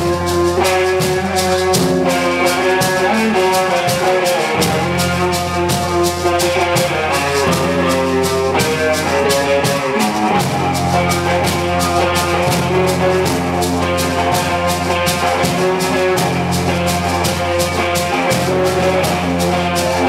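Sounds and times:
rock band playing: 0.0 - 20.0.

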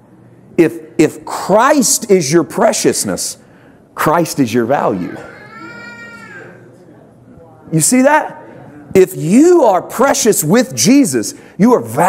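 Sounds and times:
person preaching: 0.6 - 3.4, 4.0 - 5.3, 9.0 - 12.0.

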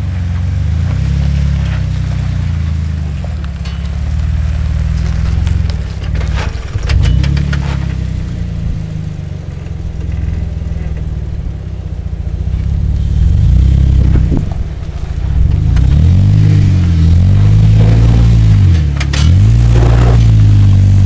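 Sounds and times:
engine pulling at low speed: 0.0 - 21.0.

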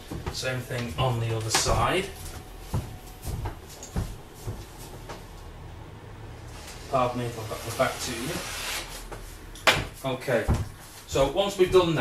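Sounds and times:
footsteps: 0.0 - 5.6, 9.0 - 12.0
low steady hum: 0.0 - 7.8.

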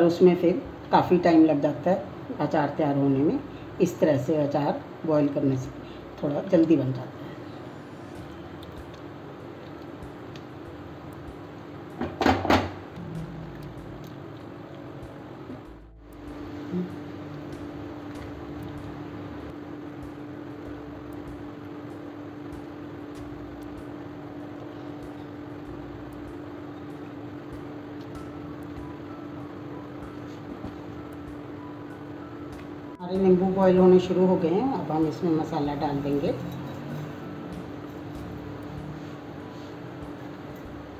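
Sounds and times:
low hum: 12.8 - 34.3.

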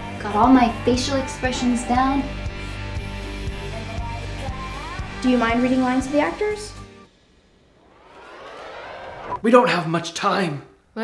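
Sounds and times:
siren-like rising tone: 7.4 - 9.4.

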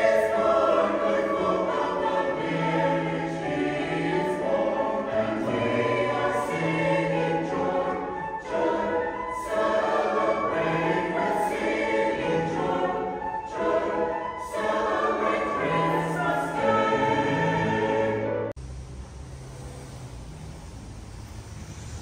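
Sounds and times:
church choir singing: 0.0 - 18.6.

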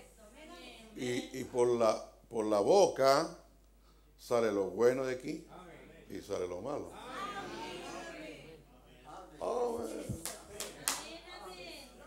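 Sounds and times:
man clapping hands: 10.2 - 11.1.

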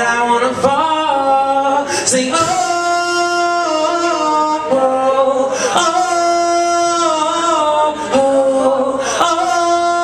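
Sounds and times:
man singing into microphone: 0.0 - 10.0.

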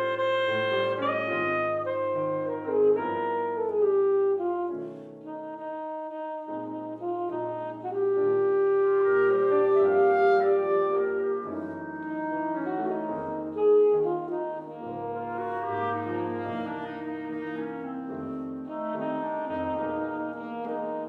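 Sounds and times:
piano chords: 0.0 - 21.0
saxophone jazz melody: 0.0 - 21.0.

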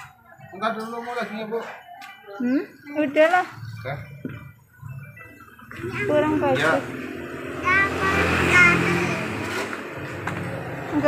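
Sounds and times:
vehicle passing: 4.8 - 11.0.

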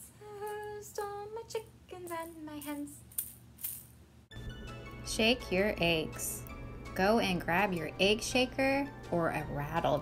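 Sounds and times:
egg shaker rattling: 2.2 - 4.0
instrumental intro music: 4.3 - 9.9.

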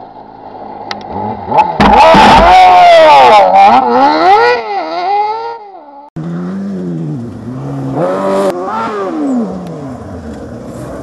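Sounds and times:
rally car engine revving: 0.8 - 11.0.

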